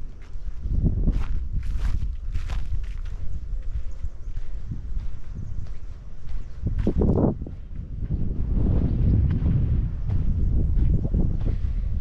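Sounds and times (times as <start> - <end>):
footsteps crunching on dirt path: 0.0 - 12.0
low rumble: 0.6 - 12.0.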